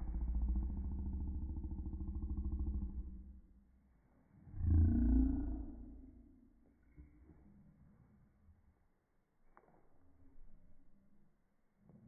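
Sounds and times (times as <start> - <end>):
low rough growl: 0.0 - 3.5, 4.4 - 6.3.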